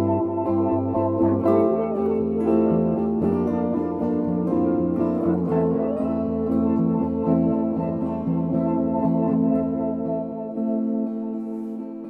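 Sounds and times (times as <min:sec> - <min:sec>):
plucked guitar notes: 0:00.0 - 0:12.0.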